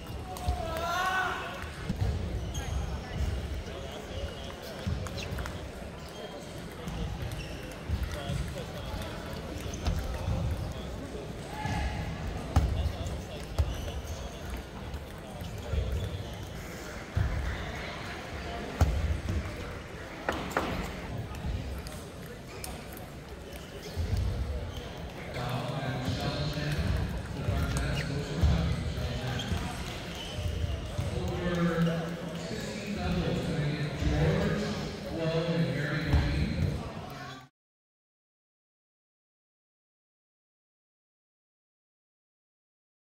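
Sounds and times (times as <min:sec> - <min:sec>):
background chatter: 0:00.0 - 0:37.5.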